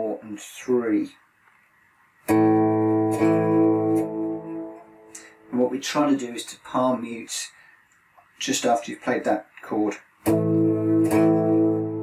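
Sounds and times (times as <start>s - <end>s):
electric guitar power chord ringing: 2.3s - 5.2s, 10.3s - 12.0s.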